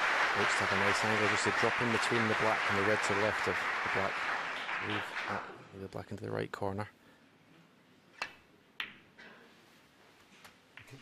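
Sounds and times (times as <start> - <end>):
snooker balls clicking: 8.2 - 9.1.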